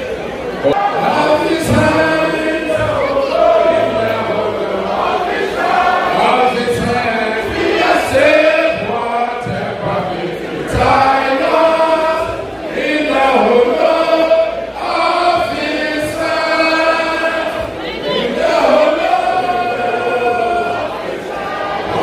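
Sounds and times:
crowd singing: 0.0 - 22.0.

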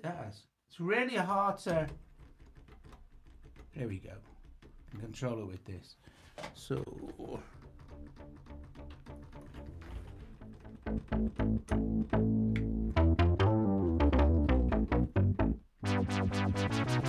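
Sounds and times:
synthesizer low bass notes: 9.1 - 17.0.

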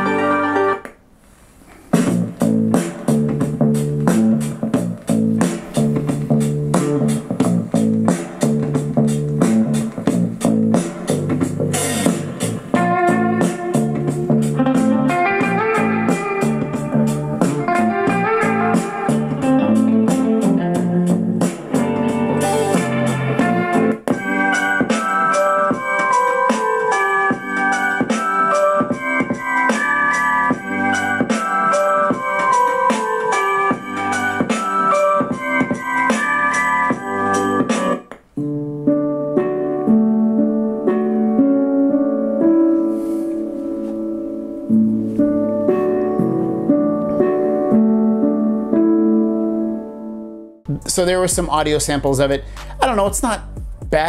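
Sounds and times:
music with a steady beat: 1.8 - 54.0.

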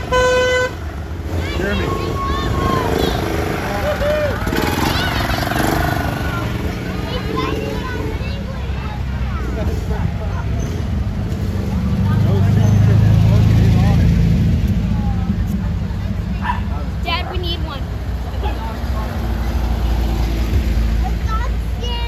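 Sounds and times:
car engines passing slowly: 0.0 - 22.0.

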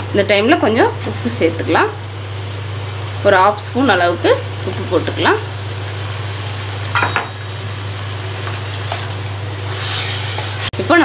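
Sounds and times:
chicken sizzling in a pan: 0.4 - 11.0.

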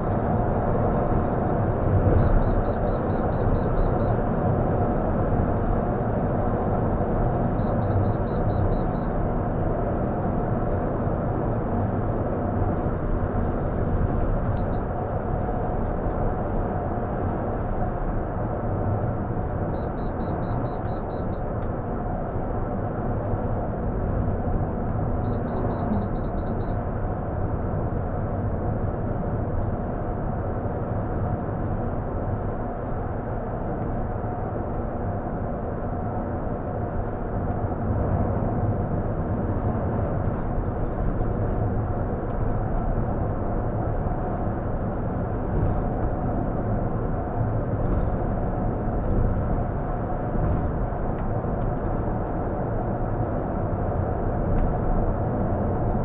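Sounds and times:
coach engine and road noise: 0.0 - 56.0
rapid electronic beeps: 2.2 - 4.2, 7.6 - 9.1, 19.8 - 21.4, 25.2 - 26.8.

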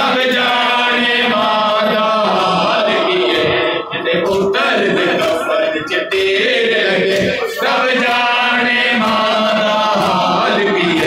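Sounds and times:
man chanting a lament: 0.0 - 11.0.

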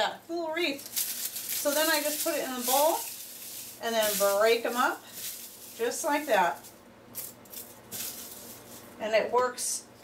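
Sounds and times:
dry leaves crackling: 0.6 - 9.0.

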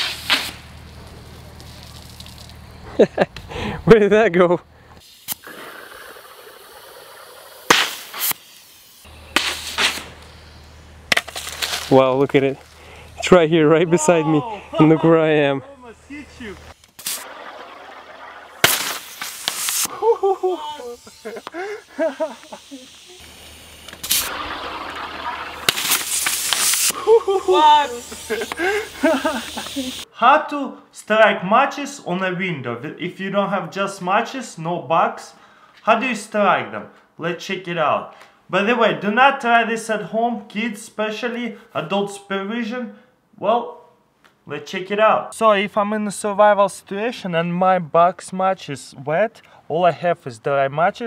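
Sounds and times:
noisy rustling burst: 0.0 - 2.6, 7.7 - 10.3, 16.1 - 27.0
air and water hissing out: 0.0 - 3.0, 5.0 - 10.2, 16.6 - 30.1
cork popping from bottle: 5.2 - 8.4, 16.9 - 19.9
man exclaiming excitedly: 13.2 - 16.6, 19.9 - 21.7, 27.0 - 28.8
stopper popping loudly: 16.1 - 29.8
rush of air and water: 24.0 - 27.0.

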